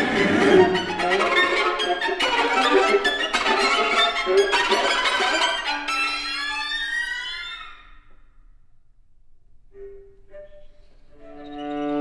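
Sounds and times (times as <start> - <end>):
string quartet glissandi: 0.0 - 6.6.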